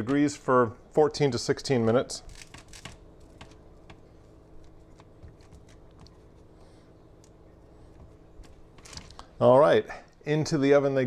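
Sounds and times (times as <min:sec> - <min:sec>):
low steady hum: 0:00.0 - 0:11.0
fingers tapping dough: 0:02.4 - 0:06.3.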